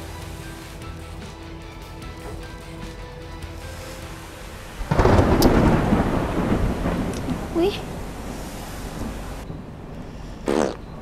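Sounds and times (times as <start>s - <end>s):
deep rumble like thunder: 4.2s - 9.5s.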